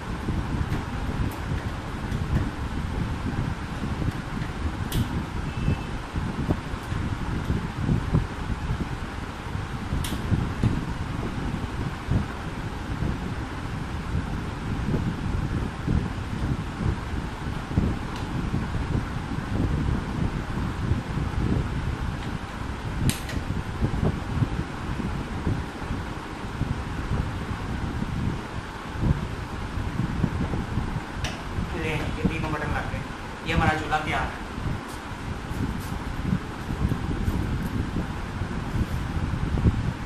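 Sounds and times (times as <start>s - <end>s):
fan-like air noise: 0.0s - 40.0s.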